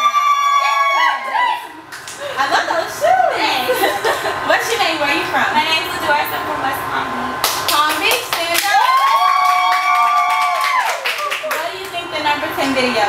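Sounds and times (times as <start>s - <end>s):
high drawn-out cheer: 0.0s - 2.4s, 8.6s - 11.4s
hand clapping: 1.9s - 2.2s, 7.4s - 12.0s
people talking: 2.3s - 9.0s, 11.1s - 13.0s.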